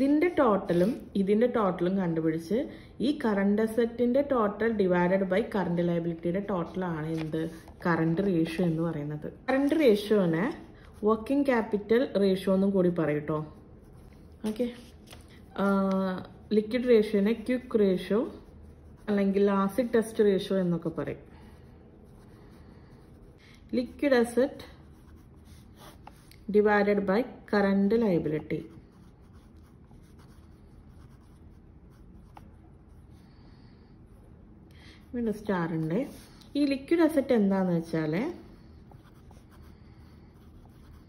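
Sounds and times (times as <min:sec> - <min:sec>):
pen scratching on paper: 0:18.1 - 0:20.2, 0:24.8 - 0:26.3, 0:28.6 - 0:33.2, 0:38.8 - 0:41.0.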